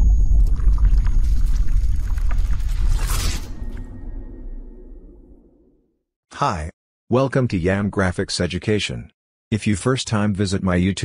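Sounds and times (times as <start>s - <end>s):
crackles: 0.0s - 4.4s
deep rumble: 0.0s - 5.8s.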